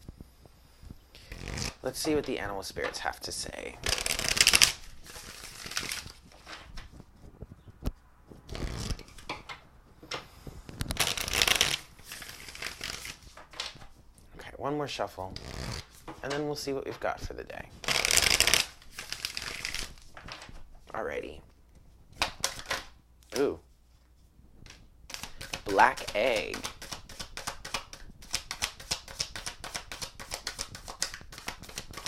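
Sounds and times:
cards being shuffled: 1.2 - 3.0, 3.8 - 9.3, 10.7 - 14.0, 15.3 - 17.0, 17.8 - 20.7, 22.1 - 23.6, 24.6 - 32.0.

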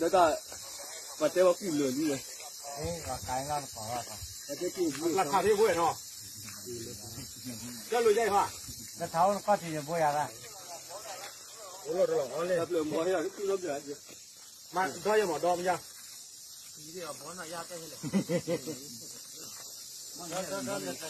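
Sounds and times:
background hiss: 0.0 - 21.0
men talking: 0.0 - 21.0.

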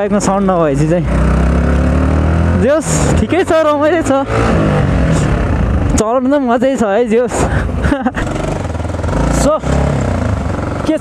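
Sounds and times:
man talking: 0.0 - 1.1, 2.5 - 7.6, 9.2 - 9.9, 10.8 - 11.0
motorcycle engine running: 0.0 - 11.0.

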